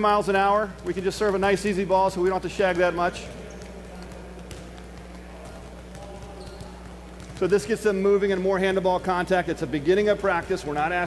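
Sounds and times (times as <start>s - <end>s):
background voices in large hall: 0.0s - 11.0s
volleyballs bouncing on floor: 0.0s - 11.0s.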